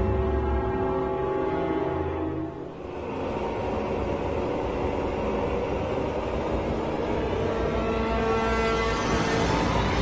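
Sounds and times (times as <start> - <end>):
dark ominous background score: 0.0 - 10.0.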